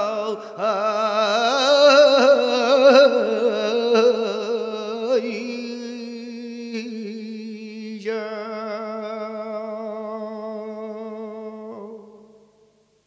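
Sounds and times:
man singing unaccompanied: 0.0 - 12.7.

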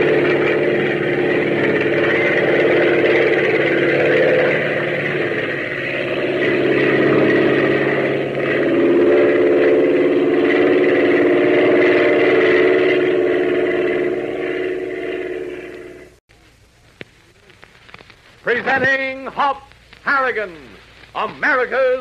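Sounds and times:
propeller airplane engine: 0.0 - 16.2.

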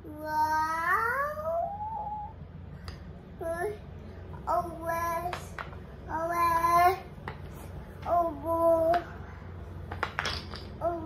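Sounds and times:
toddler singing vowel notes: 0.2 - 2.4.

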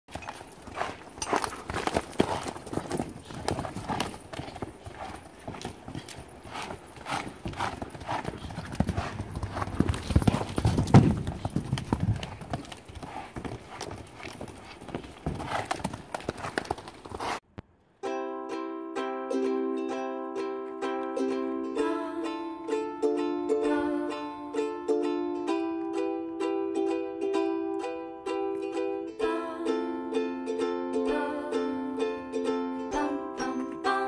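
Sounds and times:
horse hoofbeats on sand: 0.1 - 17.4.

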